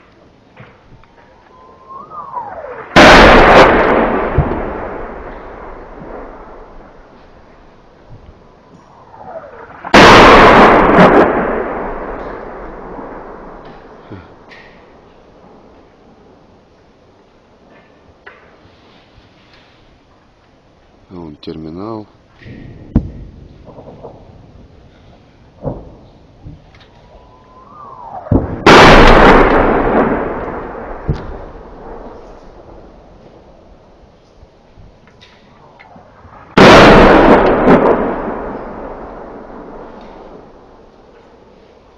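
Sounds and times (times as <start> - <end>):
incoming shell whistling: 1.3 - 4.7, 26.8 - 31.3
artillery shell explosion: 1.7 - 7.9, 8.9 - 15.0, 22.5 - 24.9, 25.6 - 33.6, 36.0 - 40.9
distant impact thuds: 22.4 - 24.2.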